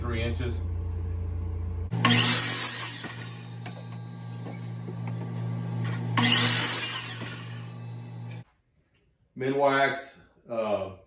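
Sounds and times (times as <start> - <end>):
miter saw cutting wood: 1.9 - 8.4.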